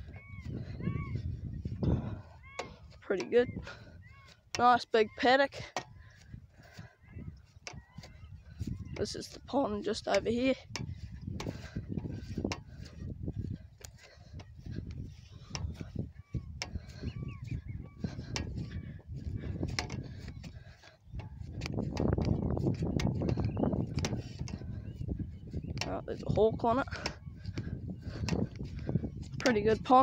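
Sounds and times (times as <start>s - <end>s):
faint bird calls: 0.0s - 9.0s, 10.8s - 21.5s
wind buffeting microphone: 0.0s - 30.0s.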